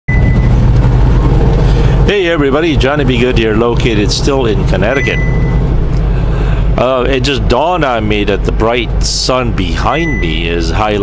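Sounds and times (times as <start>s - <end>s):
road and tyre noise: 0.1s - 11.0s
truck engine drone: 0.1s - 11.0s.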